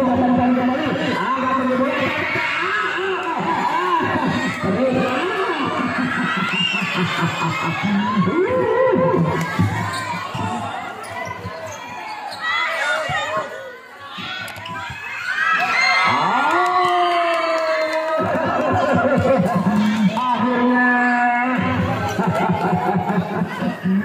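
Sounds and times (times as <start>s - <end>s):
players and spectators shouting: 0.0s - 24.0s.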